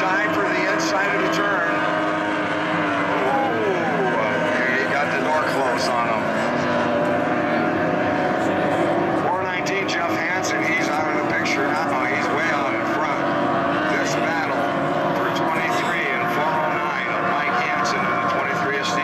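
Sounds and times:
racing boat outboard engines: 0:00.0 - 0:19.0.

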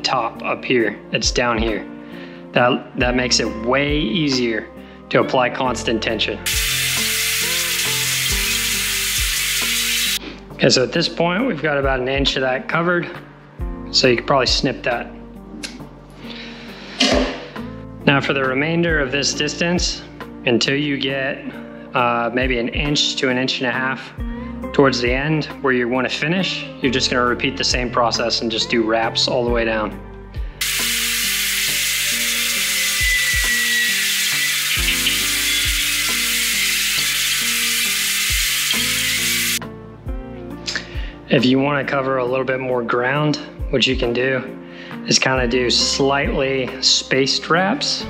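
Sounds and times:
soft background music: 0:00.0 - 0:48.0
guitar music: 0:06.4 - 0:10.2, 0:30.6 - 0:40.7
steady hiss: 0:06.5 - 0:10.2, 0:30.6 - 0:39.6.

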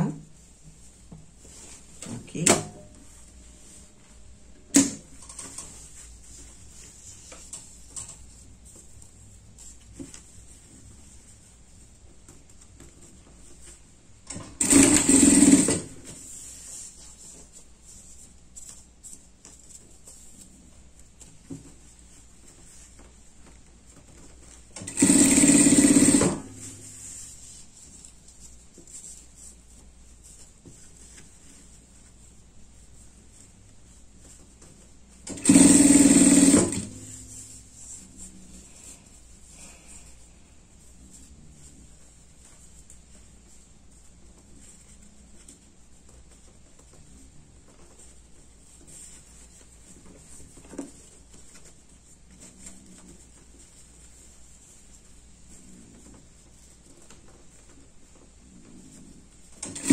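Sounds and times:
industrial sewing machine stitching: 0:14.3 - 0:16.0, 0:24.8 - 0:26.6, 0:35.3 - 0:37.2, 0:59.6 - 0:59.9.

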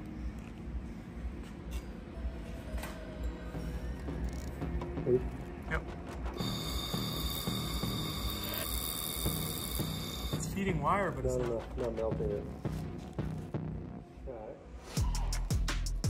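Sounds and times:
background music: 0:00.0 - 0:16.0
laser welder high-pitched whine: 0:06.4 - 0:10.6.

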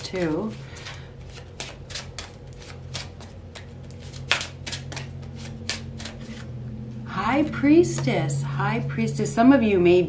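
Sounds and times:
cards being shuffled by hand: 0:00.0 - 0:06.5
steady low hum: 0:00.0 - 0:10.0.

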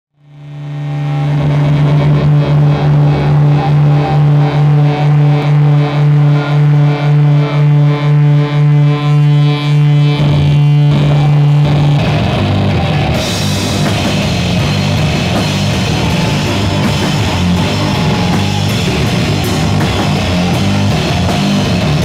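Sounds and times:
pulsing amplified low drone: 0:00.2 - 0:22.0
metal band with drums: 0:10.0 - 0:22.0.

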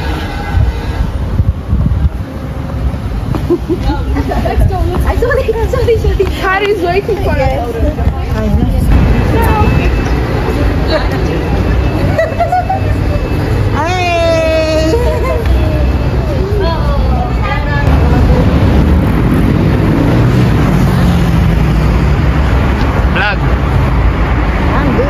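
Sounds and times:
people's voices outdoors: 0:00.0 - 0:25.0
steady low rumble: 0:14.5 - 0:20.8.

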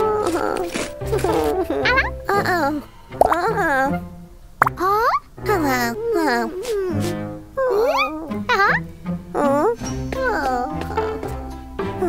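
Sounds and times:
high-pitched cartoon voices: 0:00.0 - 0:04.0, 0:04.6 - 0:08.8.

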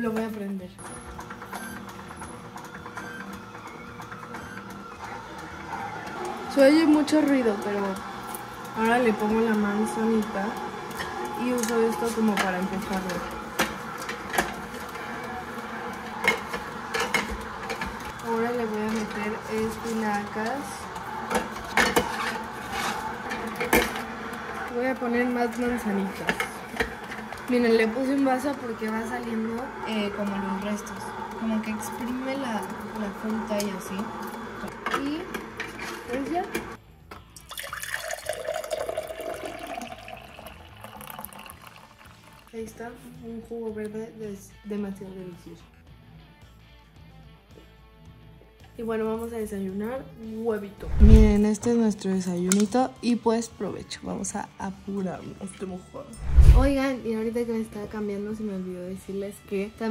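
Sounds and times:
juicer motor running: 0:00.8 - 0:42.6, 0:50.8 - 0:51.4
apple cracking in juicer: 0:01.1 - 0:42.4
juice pouring into glass: 0:37.4 - 0:42.6.

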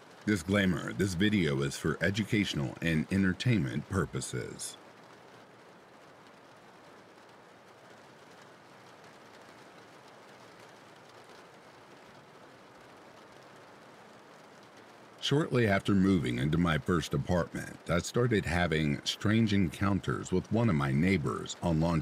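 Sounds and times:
faint steady rain: 0:00.0 - 0:22.0.

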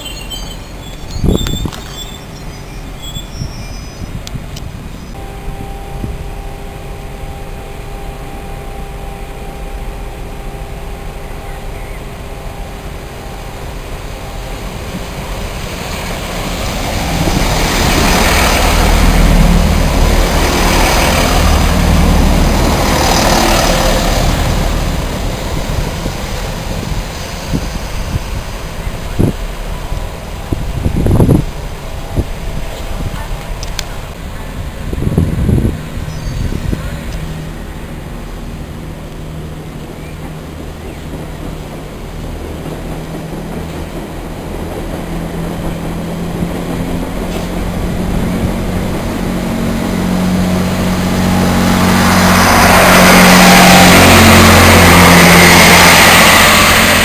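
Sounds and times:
diesel train passing: 0:00.0 - 0:57.0
steady hum: 0:05.2 - 0:13.6.

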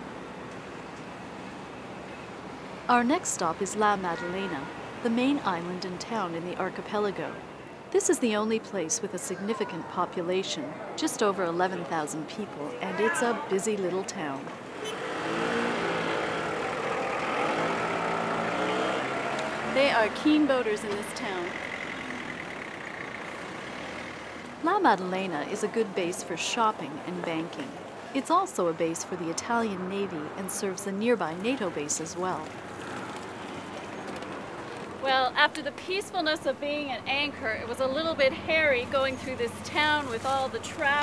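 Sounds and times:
street noise hiss: 0:00.0 - 0:41.0
small engine driving past: 0:14.7 - 0:24.5.

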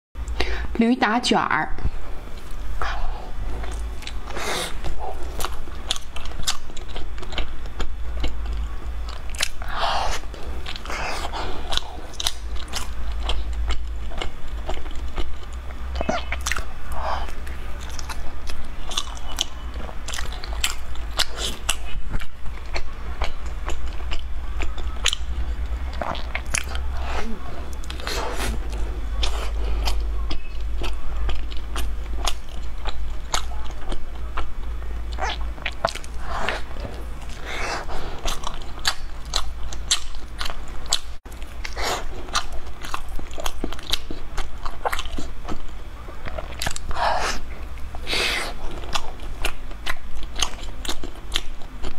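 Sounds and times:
steady low hum: 0:00.2 - 0:51.9
wet chewing and mouth smacks: 0:03.6 - 0:34.5, 0:35.1 - 0:51.9.

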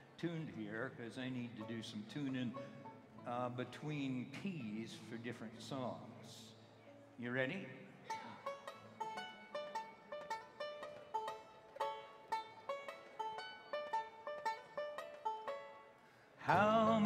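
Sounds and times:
plucked string melody: 0:01.3 - 0:05.7, 0:08.0 - 0:15.9, 0:16.5 - 0:17.0.

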